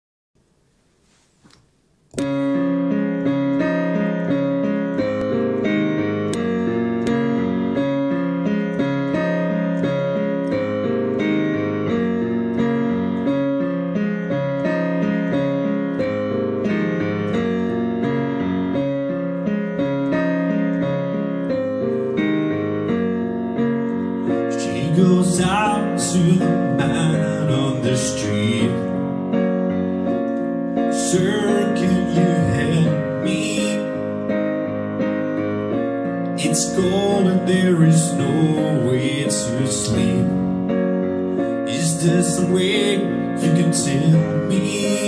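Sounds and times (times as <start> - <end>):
keyboard playing sustained chords: 2.2 - 45.0.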